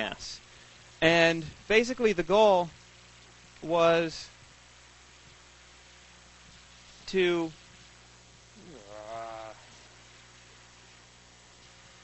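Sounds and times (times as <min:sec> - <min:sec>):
faint steady hum: 0:00.0 - 0:12.0
man saying uh: 0:08.6 - 0:09.6.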